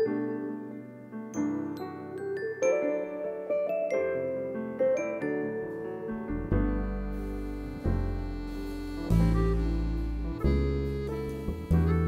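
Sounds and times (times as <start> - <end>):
piano chords: 0.0 - 12.0
low bass: 6.3 - 12.0.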